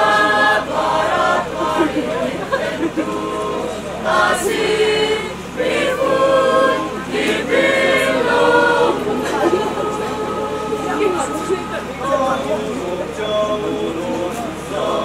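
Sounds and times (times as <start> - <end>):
mixed choir singing: 0.0 - 15.0.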